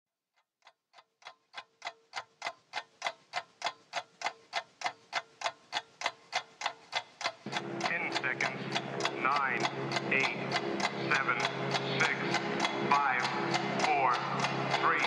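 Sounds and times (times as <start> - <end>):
clock ticking: 0.4 - 15.0
held low chord: 7.5 - 15.0.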